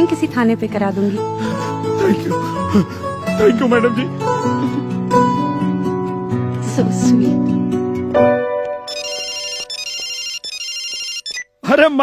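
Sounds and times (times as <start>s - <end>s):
mobile phone ringtone: 8.9s - 11.5s.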